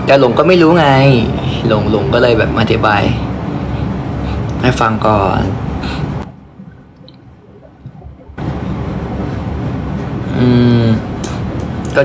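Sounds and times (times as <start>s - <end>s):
room hiss and low hum: 0.0s - 12.0s.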